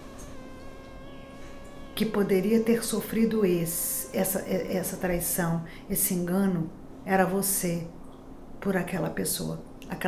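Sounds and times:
faint steady tonal hum: 0.0s - 10.0s.

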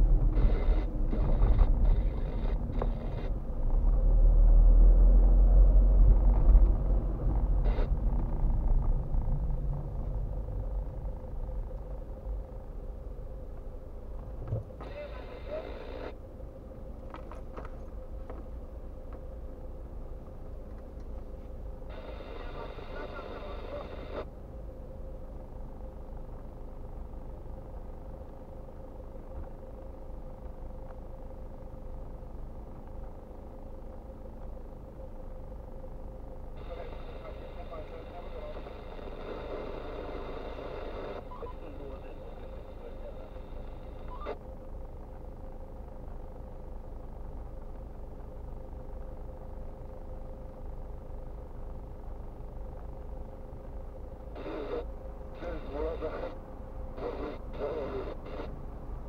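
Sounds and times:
muffled radio voice chatter: 0.3s - 3.4s, 14.8s - 16.2s, 21.9s - 24.3s, 36.6s - 44.4s, 54.3s - 58.6s.

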